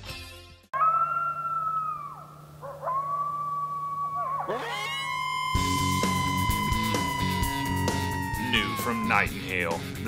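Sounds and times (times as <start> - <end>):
coyote howling: 0.8 - 9.4.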